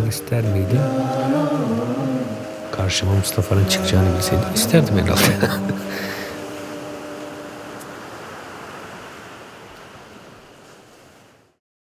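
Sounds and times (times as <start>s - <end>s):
sea waves washing: 0.0s - 11.5s.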